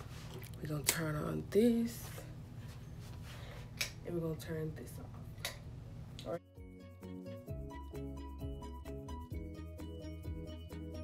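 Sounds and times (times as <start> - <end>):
low room hum: 0.0 - 6.4.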